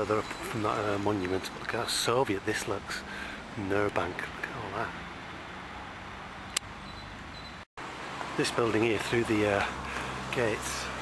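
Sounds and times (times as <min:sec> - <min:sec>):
distant traffic hum: 0:00.0 - 0:11.0
sharp click: 0:06.5 - 0:06.7.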